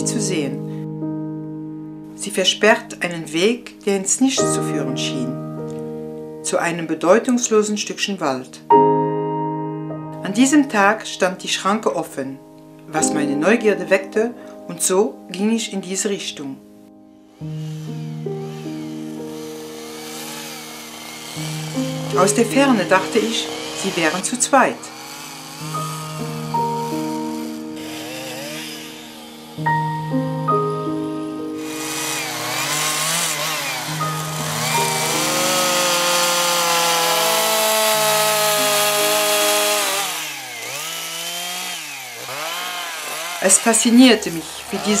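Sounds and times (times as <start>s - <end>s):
background music of sustained chords: 0.0s - 45.0s
faint chainsaw engine: 17.3s - 45.0s.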